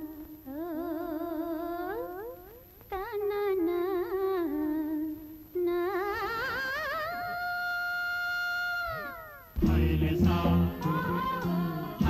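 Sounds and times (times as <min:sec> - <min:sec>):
film-song accompaniment with bass: 0:09.6 - 0:12.0.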